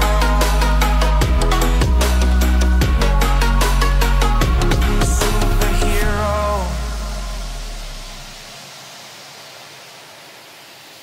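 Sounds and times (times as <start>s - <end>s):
deep bass music: 0.0s - 8.4s
white noise hiss: 0.0s - 11.0s.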